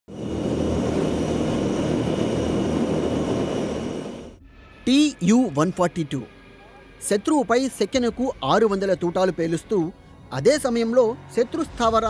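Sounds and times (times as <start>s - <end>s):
high whine: 0.1s - 12.0s
turboprop engines droning: 0.1s - 12.0s.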